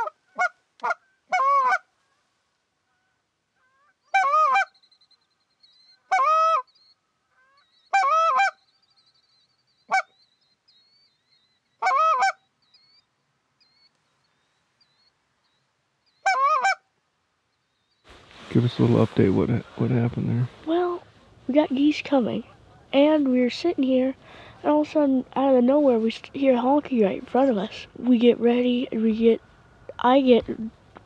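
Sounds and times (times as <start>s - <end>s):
goose call honks and clucks: 0.0s - 1.9s, 2.9s - 4.7s, 6.1s - 6.7s, 7.3s - 8.6s, 11.8s - 12.4s, 16.2s - 16.8s
distant geese honking: 0.0s - 2.2s, 2.9s - 4.8s, 5.9s - 9.2s, 9.8s - 10.3s, 11.7s - 13.0s, 16.1s - 16.8s, 20.6s - 24.9s.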